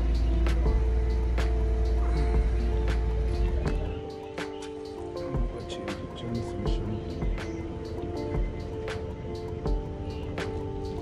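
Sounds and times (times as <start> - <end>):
heavy bass: 0.0 - 4.1
held keyboard chords: 0.0 - 11.0.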